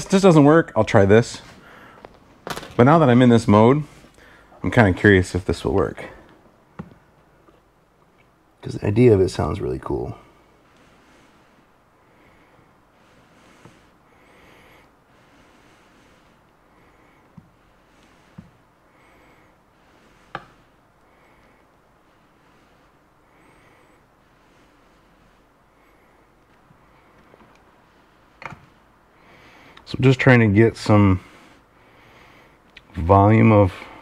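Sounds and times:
low background hiss: 0.0s - 34.0s.

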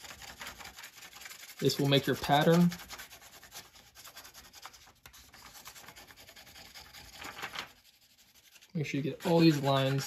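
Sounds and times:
pencil scribbling on paper: 0.0s - 10.0s.

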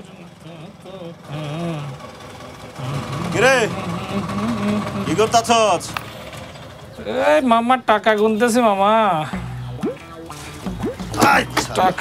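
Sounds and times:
scooter engine idling: 0.0s - 8.0s
voices: 0.0s - 12.0s.

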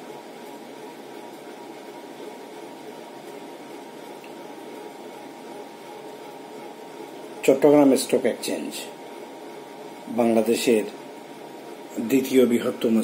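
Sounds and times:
room noise hiss: 0.0s - 13.0s.

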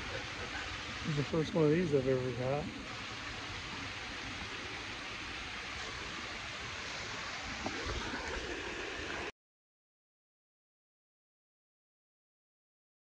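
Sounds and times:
river water over rocks: 0.0s - 9.3s.

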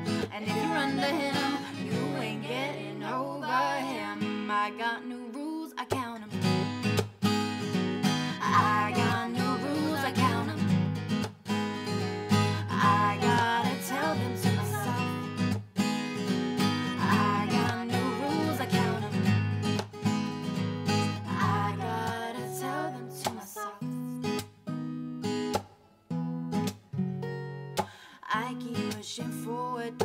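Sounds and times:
acoustic guitar strumming: 0.0s - 4.5s, 6.4s - 23.5s
woman singing: 0.0s - 6.7s, 8.2s - 10.9s, 12.4s - 15.5s, 16.8s - 19.5s, 21.2s - 24.2s, 28.0s - 30.0s.

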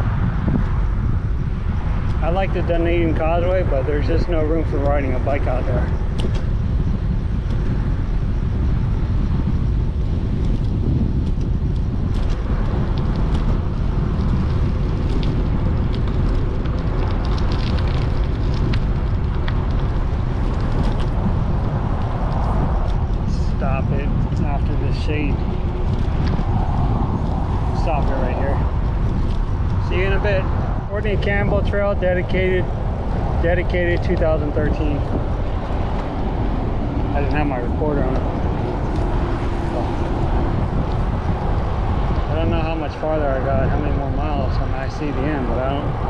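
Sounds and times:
highway traffic: 0.0s - 46.0s
wind rumble on microphone: 0.0s - 46.0s.

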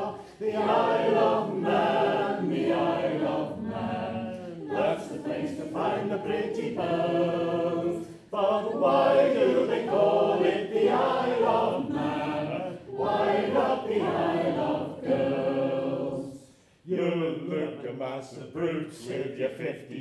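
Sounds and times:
men singing unaccompanied: 0.0s - 16.2s.

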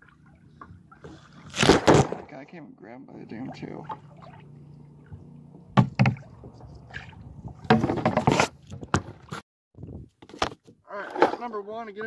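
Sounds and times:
water slopping into kayak: 0.0s - 2.3s, 3.2s - 9.4s
knocks against kayak hull: 5.8s - 6.3s, 7.6s - 9.2s.

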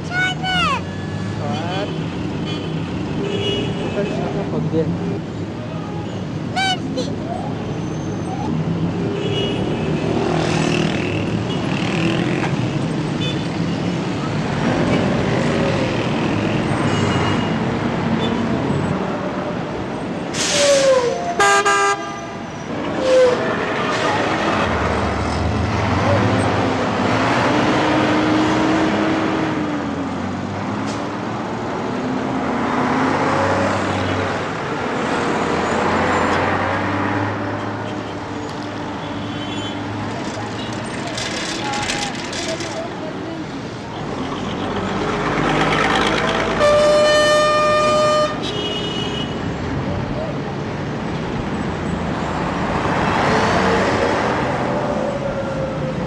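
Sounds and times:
traffic engines and passing vehicles: 0.0s - 56.0s
car horns honking: 21.4s - 22.2s, 46.6s - 49.4s.

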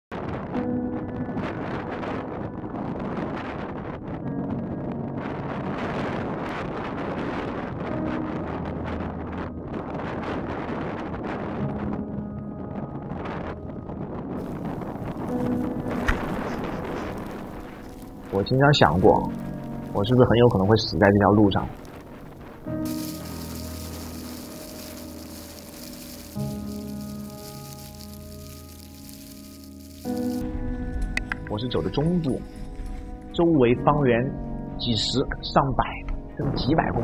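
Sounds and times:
strong wind on microphone: 0.1s - 27.8s.

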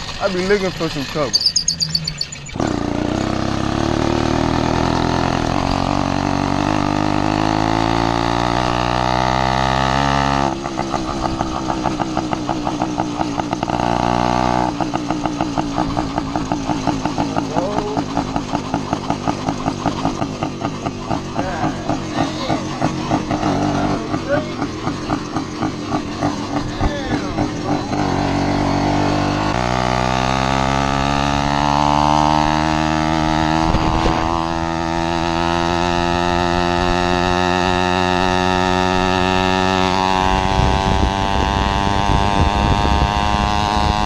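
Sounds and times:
two-stroke engine revving: 0.0s - 44.0s.

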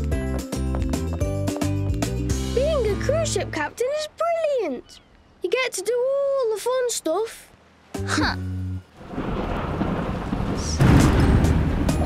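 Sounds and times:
heavy rain: 8.9s - 12.0s
thunder rumbling: 9.0s - 12.0s
thunderclap: 9.0s - 12.0s.

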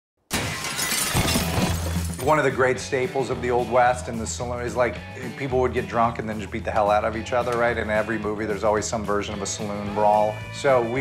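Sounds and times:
glass shattering: 0.3s - 2.4s.

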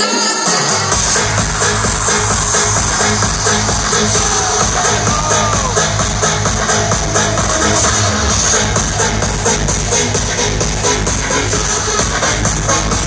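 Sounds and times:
electronic dance music: 0.0s - 13.0s
heavy bass: 0.1s - 13.0s
kick drum beat: 0.9s - 13.0s.

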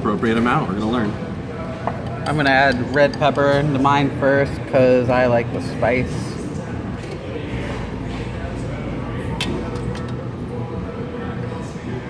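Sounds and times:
indistinct background voices: 1.1s - 12.0s.

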